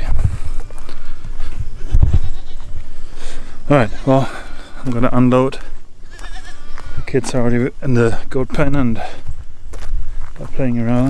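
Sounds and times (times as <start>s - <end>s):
goats bleating: 1.1s - 7.4s.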